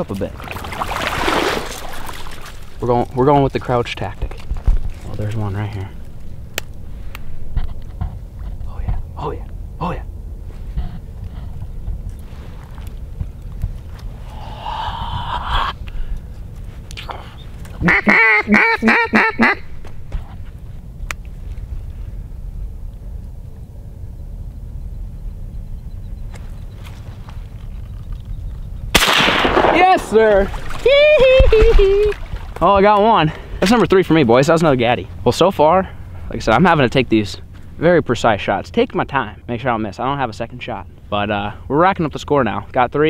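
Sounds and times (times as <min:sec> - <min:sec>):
loud duck quacks: 0:17.8 - 0:19.7
shotgun blast: 0:28.9 - 0:30.3.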